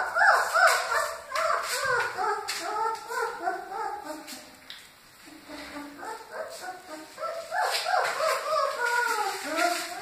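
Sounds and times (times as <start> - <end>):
puppies whimpering and squealing: 0.0 - 4.5, 5.3 - 10.0.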